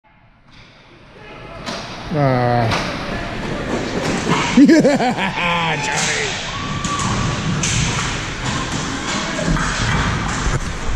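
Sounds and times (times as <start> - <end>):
hockey game noise: 0.9 - 10.9
man shouting: 5.4 - 6.4
stick hitting puck: 6.9 - 10.6.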